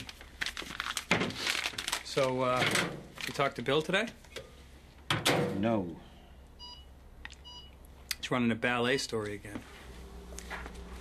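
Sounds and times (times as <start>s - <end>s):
short electronic beeps: 6.6s - 7.8s.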